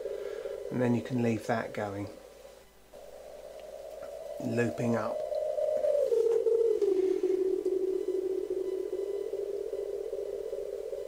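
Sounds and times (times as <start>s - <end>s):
sustained synth tone: 0.0s - 11.0s.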